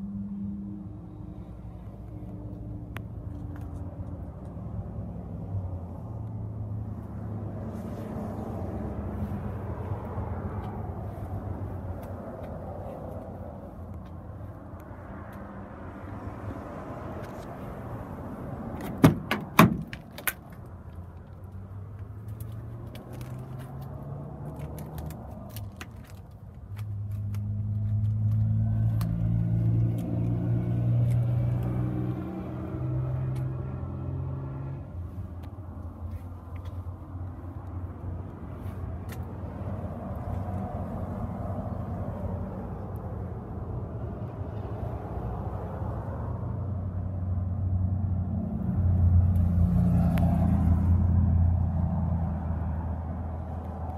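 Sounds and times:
low vehicle rumble: 0.0s - 53.9s
vehicle engine climbing in steps: 1.1s - 44.6s
car door latch clicks: 18.8s - 20.4s.

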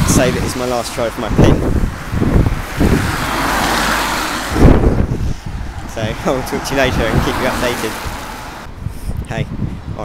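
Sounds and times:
wind buffeting microphone: 0.0s - 10.0s
car passing by: 2.6s - 8.7s.

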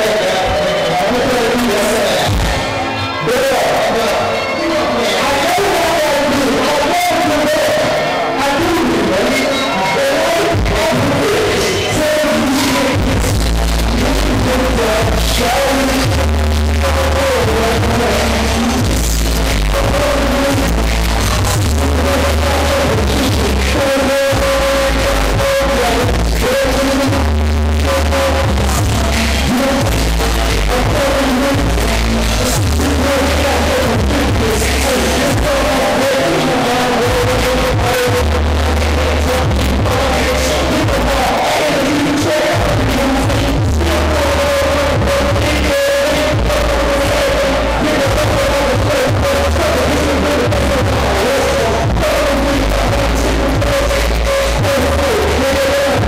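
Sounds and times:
heavy pulsing bass line: 0.0s - 56.0s
hip-hop beat through sound system: 0.0s - 56.0s.

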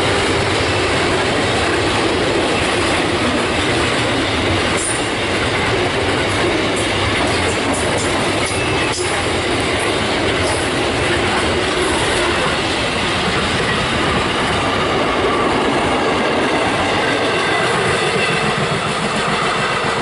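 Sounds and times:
freight train wheels rumbling: 0.0s - 20.0s.

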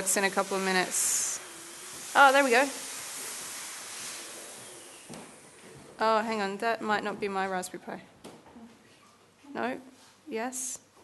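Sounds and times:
steady high hiss: 0.0s - 5.8s.

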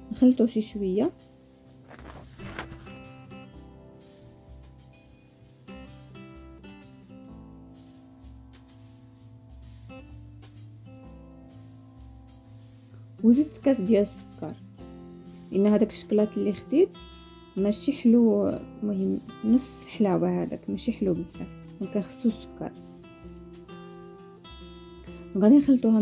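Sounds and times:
soft background music: 0.0s - 26.0s.

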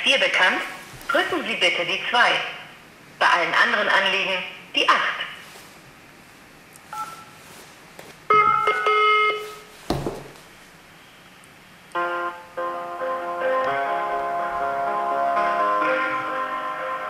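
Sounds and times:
multi-pitch phone beep: 6.9s - 7.3s, 8.3s - 9.6s.

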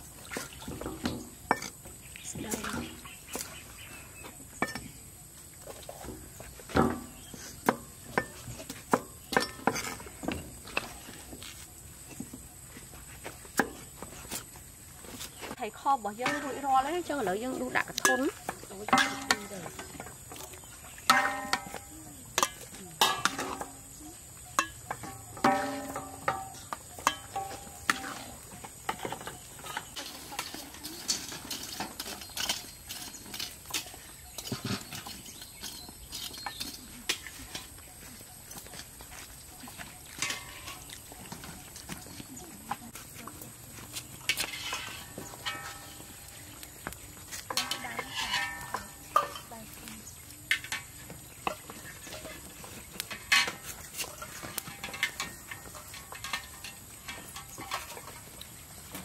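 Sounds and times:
cooking utensils clinking: 6.7s - 11.2s, 16.0s - 59.0s.

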